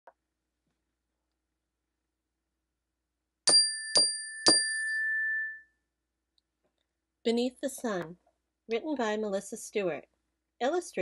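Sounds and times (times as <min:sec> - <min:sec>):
bell-like chime: 0:03.5 - 0:05.8.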